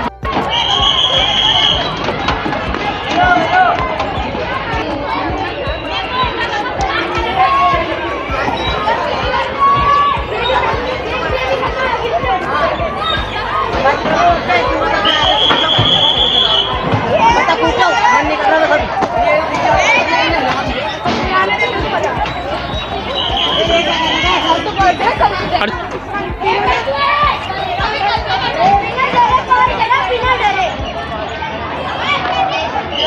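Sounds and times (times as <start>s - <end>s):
children chattering and calling out: 0.0s - 33.0s.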